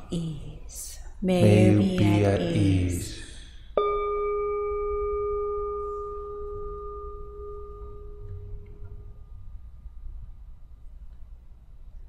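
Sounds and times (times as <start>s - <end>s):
meditation bell ringing: 3.0s - 9.7s.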